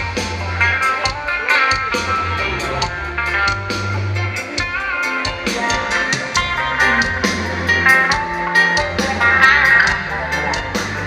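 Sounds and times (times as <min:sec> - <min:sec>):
live band with guitar and drums: 0:00.0 - 0:11.0.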